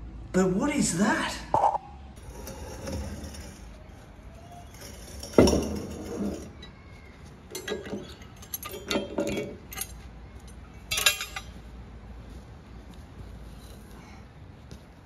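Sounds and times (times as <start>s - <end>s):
steel keys clinking and rattling: 7.5s - 11.5s.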